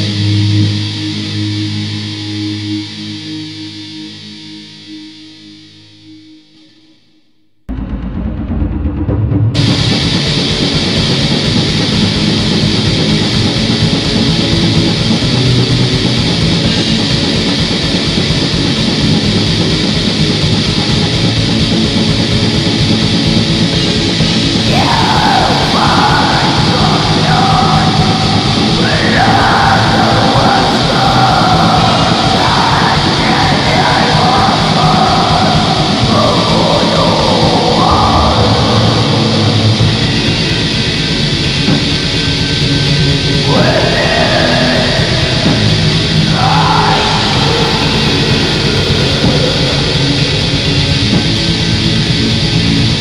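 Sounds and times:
distorted guitars: 0.0 - 7.1, 7.7 - 53.0
fast drums: 7.7 - 53.0
harsh shrieked vocals: 24.6 - 40.8, 43.3 - 51.0.

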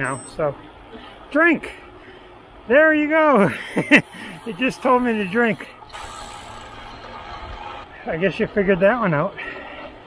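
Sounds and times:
bicycle rolling on asphalt: 1.8 - 8.7
bicycle drivetrain noise: 3.4 - 8.0.

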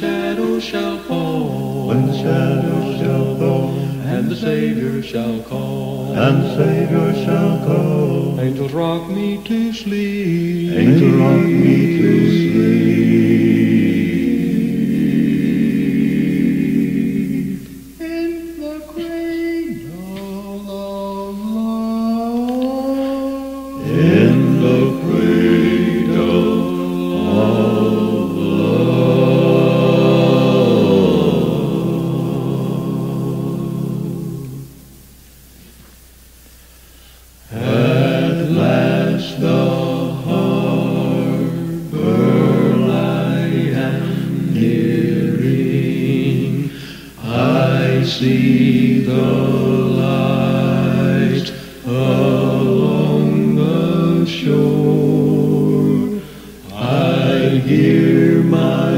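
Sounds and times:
quartet singing a cappella: 0.0 - 35.0, 37.4 - 58.9.

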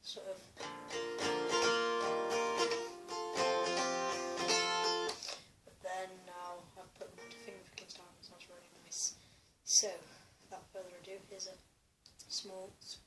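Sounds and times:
acoustic guitar fingerpicked: 0.6 - 5.2.

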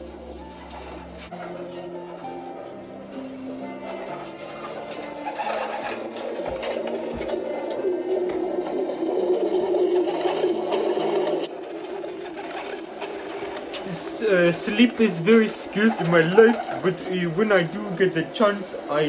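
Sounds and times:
soft background music: 0.0 - 11.6, 13.2 - 19.0.

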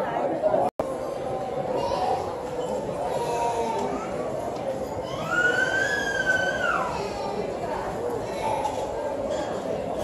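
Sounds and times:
child squealing: 5.1 - 7.0.

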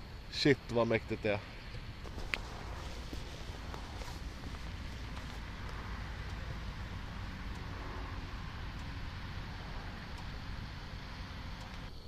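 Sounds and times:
wind rumble on microphone: 0.0 - 12.0
faint clicks: 11.5 - 12.0.

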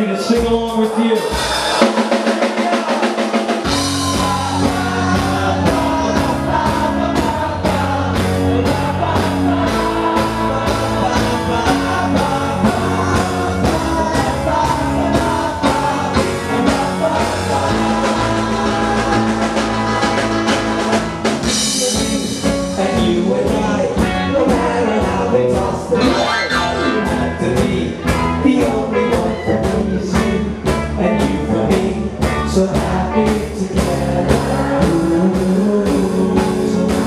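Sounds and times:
live rock band playing: 0.0 - 37.0
person singing: 0.0 - 37.0.

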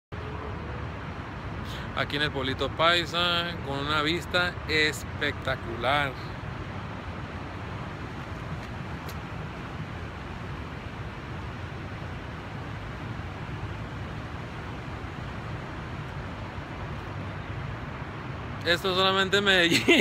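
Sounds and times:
distant city traffic hum: 0.1 - 20.0.

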